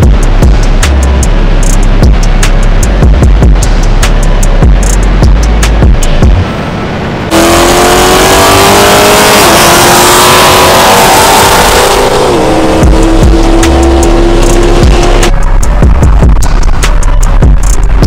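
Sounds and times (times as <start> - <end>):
background music: 0.0 - 6.6, 7.3 - 18.0
car engine at full throttle: 0.0 - 18.0
wind and road noise: 0.0 - 18.0.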